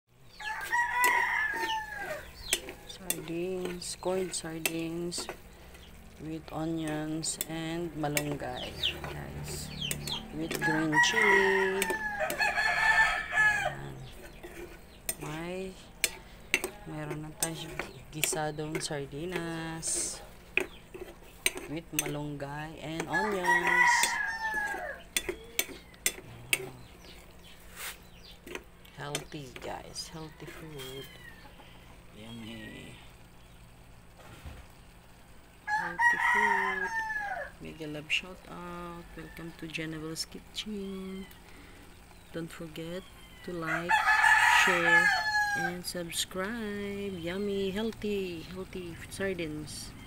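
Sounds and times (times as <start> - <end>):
rooster crowing: 0.2 - 3.2, 10.0 - 14.1, 23.0 - 26.8, 30.0 - 31.9, 35.6 - 37.7, 43.0 - 45.8.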